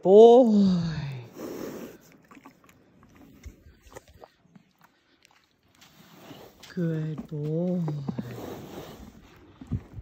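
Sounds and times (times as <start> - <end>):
horse breathing out through nostrils: 1.2 - 2.6, 5.8 - 6.8, 8.0 - 10.0.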